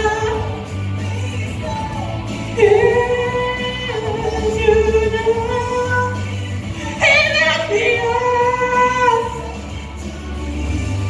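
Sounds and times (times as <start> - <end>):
pop backing track: 0.0 - 11.0.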